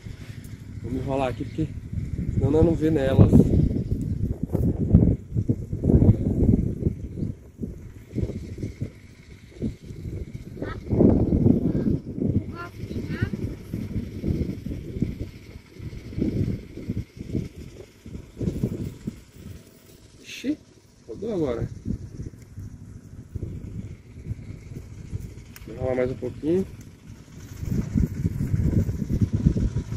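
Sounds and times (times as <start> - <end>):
wind buffeting microphone: 0.0 - 29.9.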